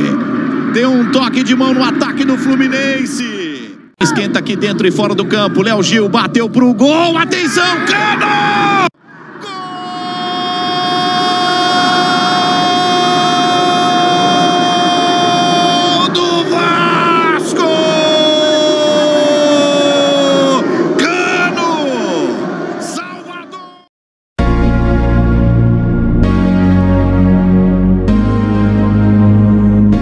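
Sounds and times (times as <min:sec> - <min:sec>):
commentator shouting goal: 0:00.8 - 0:23.9
excited speech: 0:00.8 - 0:23.9.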